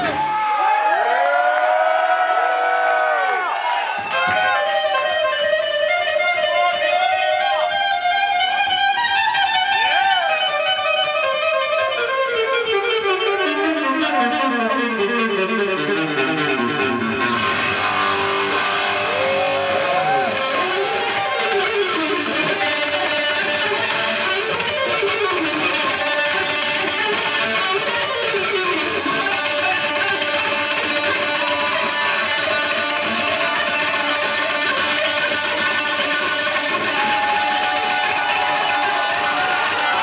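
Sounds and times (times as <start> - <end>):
electric guitar solo: 4.0 - 40.0.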